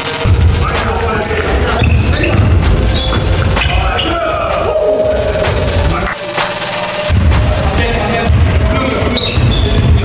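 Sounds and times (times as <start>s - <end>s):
players calling out: 0.5s - 10.0s.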